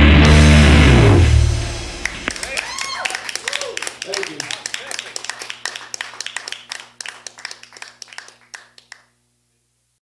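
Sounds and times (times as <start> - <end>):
faint steady hum: 1.4 - 10.0
people clapping: 1.9 - 9.2.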